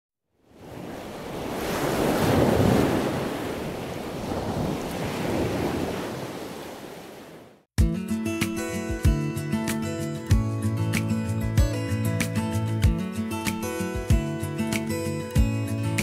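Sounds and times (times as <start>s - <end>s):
waves washing onto rocky shore: 0.6s - 7.3s.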